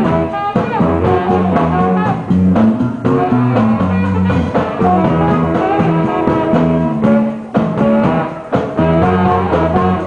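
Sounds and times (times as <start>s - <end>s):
live band with horn section: 0.0s - 10.0s.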